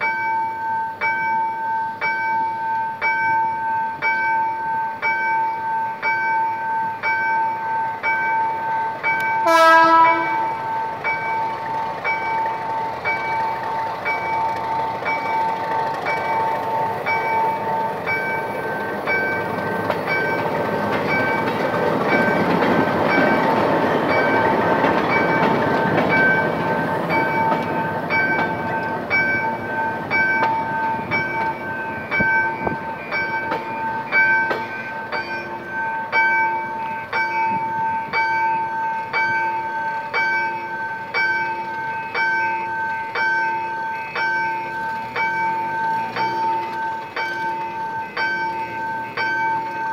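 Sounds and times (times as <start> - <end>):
level-crossing warning bell ringing: 0.0 - 49.9
train wheel noise: 0.0 - 49.9
diesel locomotive passing: 2.0 - 49.9.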